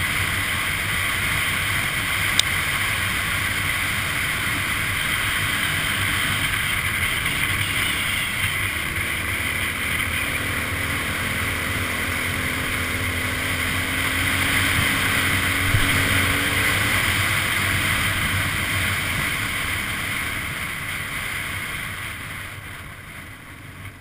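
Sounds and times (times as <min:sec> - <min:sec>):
motorcycle engine running: 0:00.0 - 0:24.0
wind rush on microphone: 0:08.3 - 0:24.0.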